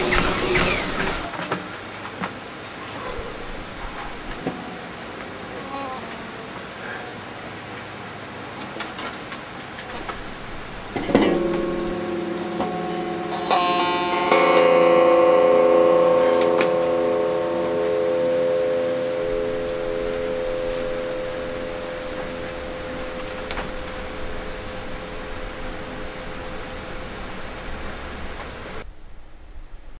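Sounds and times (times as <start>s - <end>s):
amplified guitar chords ringing: 10.1s - 28.8s.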